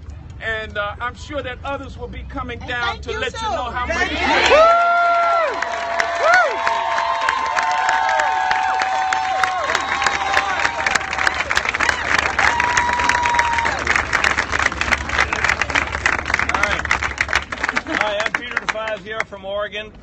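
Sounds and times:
crowd clapping: 4.1s - 19.3s.

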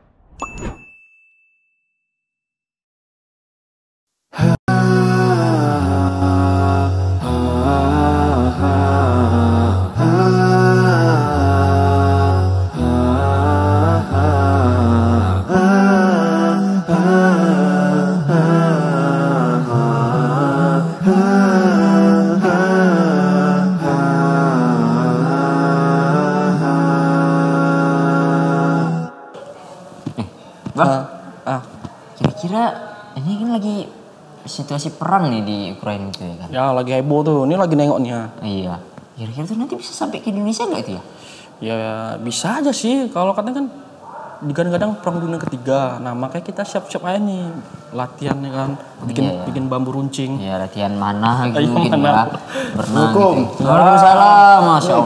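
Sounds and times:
bell-like ding: 0.4s - 2.2s
chant-like singing: 4.4s - 29.8s, 51.1s - 55.0s
steady low drone: 4.9s - 27.1s.

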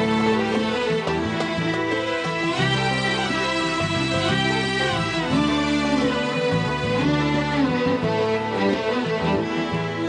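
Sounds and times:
electronic keyboard accompaniment: 0.0s - 10.0s
violins playing melody in unison: 0.0s - 10.0s.

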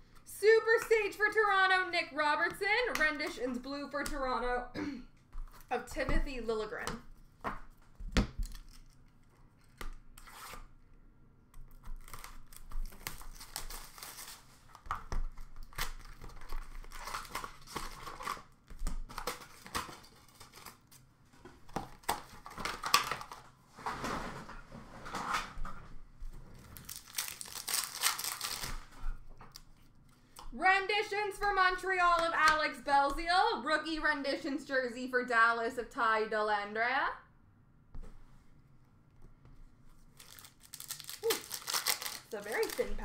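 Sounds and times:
wrappers tearing and crinkling: 8.4s - 10.6s, 12.0s - 21.0s, 26.6s - 29.7s, 40.1s - 43.0s.

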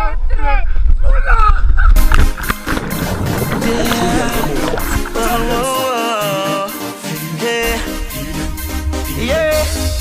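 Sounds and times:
wind buffeting microphone: 0.8s - 5.7s
underwater bubbles rushing: 2.0s - 5.8s
loud splash into water: 2.0s - 6.0s
music: 2.0s - 10.0s.

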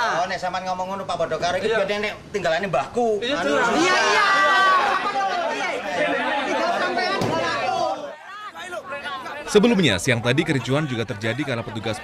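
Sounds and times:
men shouting over one another: 3.4s - 9.5s.

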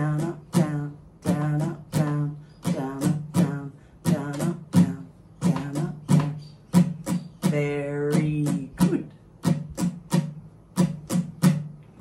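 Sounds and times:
acoustic guitar strumming: 0.0s - 11.9s.

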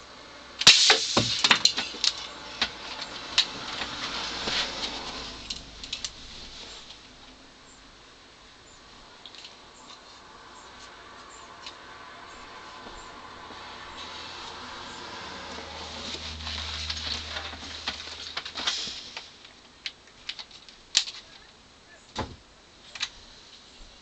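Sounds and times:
rustling and handling noises: 1.1s - 7.4s, 12.6s - 21.6s.

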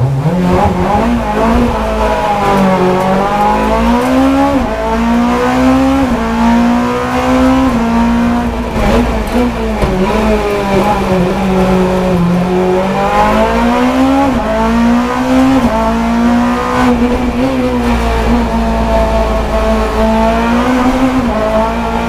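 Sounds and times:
race car engine accelerating: 0.0s - 22.0s.

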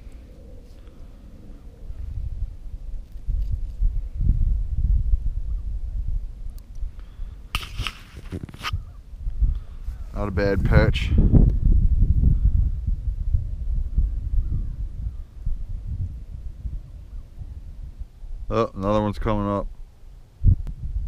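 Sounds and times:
wind rumble on microphone: 0.0s - 21.0s
rustling and handling noise: 7.6s - 8.8s.

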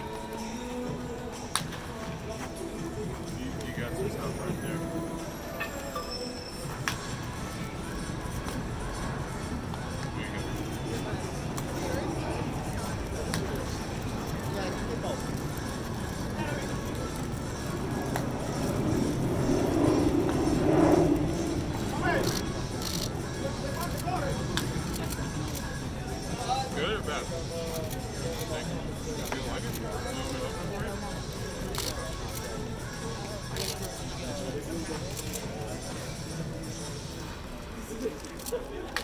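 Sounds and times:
indistinct voices: 0.0s - 39.0s
light background music: 0.0s - 39.0s
outdoor background noise: 0.0s - 39.0s.

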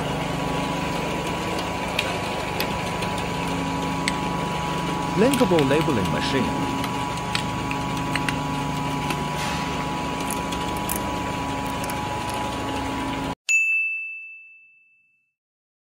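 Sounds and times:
labeling machine humming and clicking: 0.0s - 13.4s.

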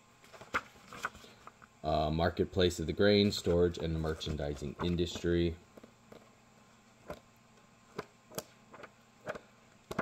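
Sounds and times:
paper pages rustling: 0.2s - 1.6s, 3.1s - 5.4s, 7.9s - 10.0s.

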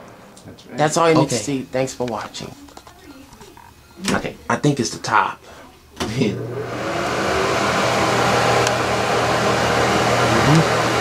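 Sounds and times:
exhaust fan running: 5.0s - 11.0s.

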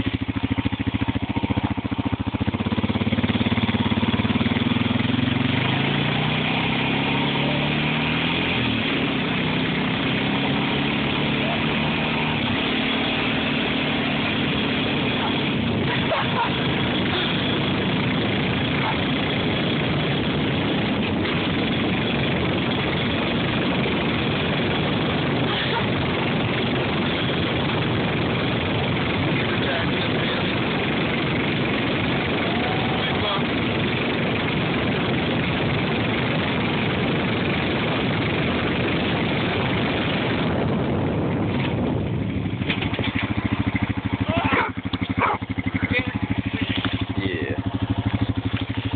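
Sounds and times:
four-wheeler engine running: 0.0s - 48.9s.

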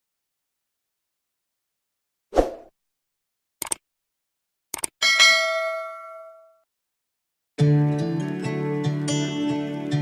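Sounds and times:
bright bell ding: 5.0s - 6.6s.

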